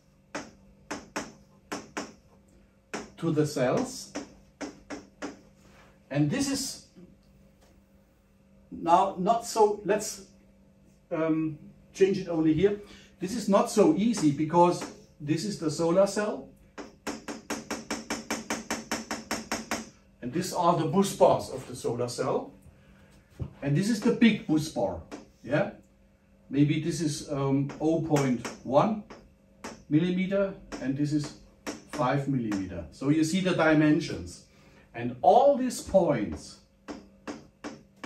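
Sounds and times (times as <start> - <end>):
pen tapping on glass screen: 0.3 - 2.2, 2.9 - 3.2, 3.8 - 5.4, 36.9 - 38.0
pen tapping on whiteboard: 0.3 - 2.2, 2.9 - 3.2, 3.8 - 5.4, 16.8 - 19.9, 25.1 - 25.3, 27.7 - 29.9, 30.7 - 32.7, 36.8 - 38.0.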